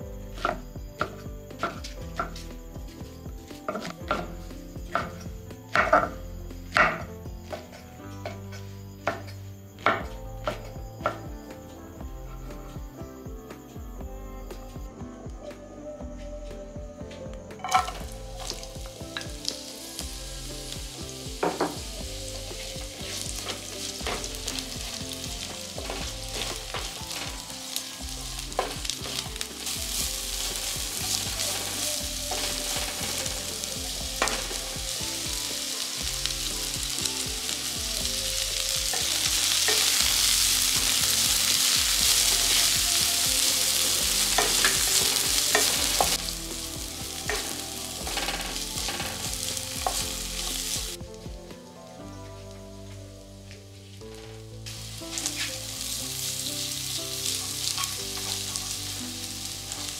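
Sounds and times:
onions sizzling in a pan: 0.0 - 14.6, 17.5 - 59.9.

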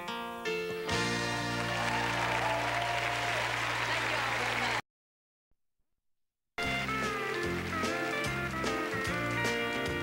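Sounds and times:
audience applause and cheering: 1.2 - 4.8, 6.6 - 9.6.

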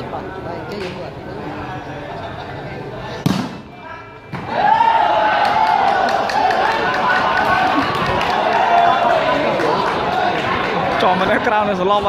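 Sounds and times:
murmuring crowd: 0.0 - 12.0.

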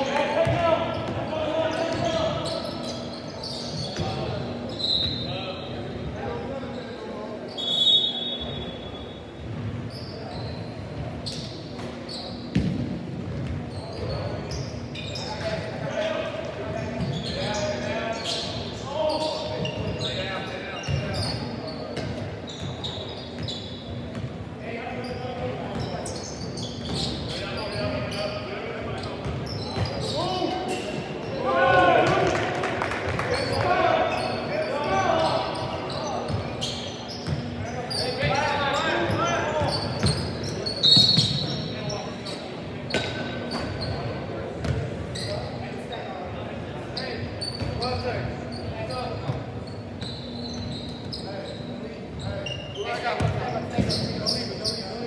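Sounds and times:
players shouting in echoing hall: 0.0 - 9.4, 27.0 - 42.4.

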